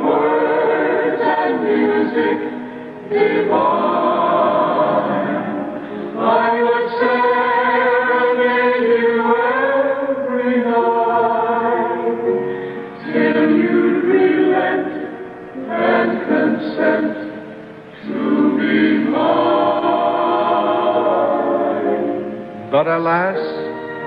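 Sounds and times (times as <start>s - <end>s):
backing choir holding chords: 0.0s - 24.0s.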